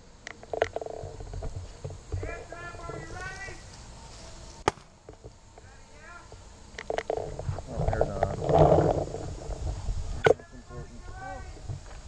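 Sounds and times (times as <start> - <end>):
distant voices talking: 1.7 - 12.0.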